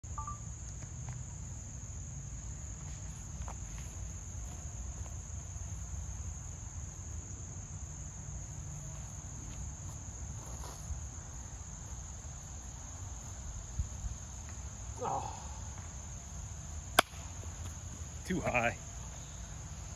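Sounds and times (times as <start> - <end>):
crickets and insects chirping: 0.0 - 19.9.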